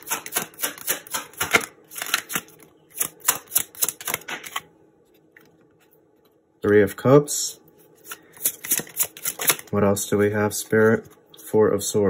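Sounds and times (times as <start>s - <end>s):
cards being shuffled: 0.3s - 5.9s, 7.8s - 9.8s.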